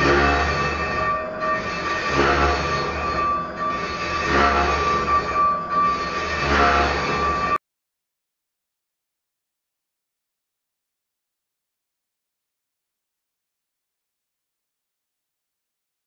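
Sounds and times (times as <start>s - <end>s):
lathe cutting tool whining on steel: 0.0s - 7.6s
lathe machine rumble: 0.0s - 7.6s.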